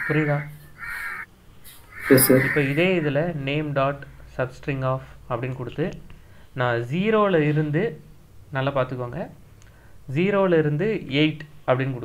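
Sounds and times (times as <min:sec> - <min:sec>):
brief higher-pitched sound: 0:02.1 - 0:02.9.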